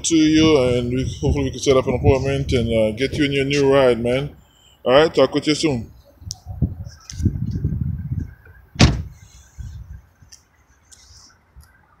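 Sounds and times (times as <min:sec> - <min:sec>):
car door shutting with thump: 0:08.8 - 0:09.2.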